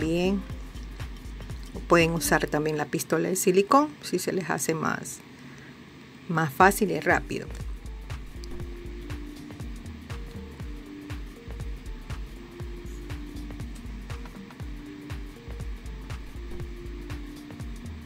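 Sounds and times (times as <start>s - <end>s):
low bass line: 0.0s - 2.6s, 6.6s - 18.0s
light ticking percussion: 0.0s - 2.7s, 6.7s - 18.0s
held melody notes: 6.7s - 18.0s.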